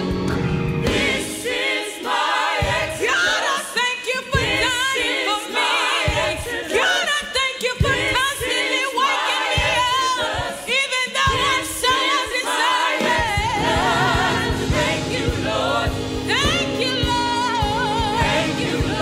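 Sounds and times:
group singing a gospel song: 0.7s - 19.0s.

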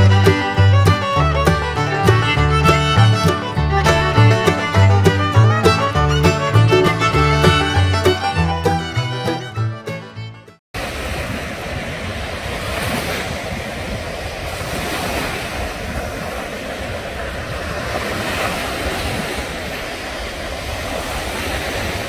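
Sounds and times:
small waves washing on sand: 10.8s - 22.0s
wind rumbling on microphone: 10.8s - 22.0s.

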